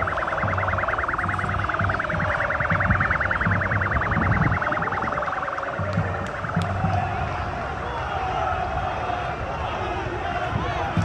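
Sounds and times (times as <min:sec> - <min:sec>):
electronic siren pulsing: 0:00.0 - 0:06.9
low repeated thuds: 0:00.0 - 0:07.1
large crowd noise: 0:00.0 - 0:11.0.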